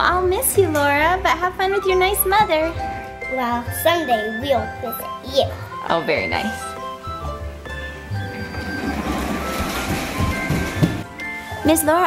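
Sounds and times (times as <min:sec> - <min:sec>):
background music: 0:00.0 - 0:12.0
toy stroller wheels rolling on floor: 0:08.2 - 0:11.1.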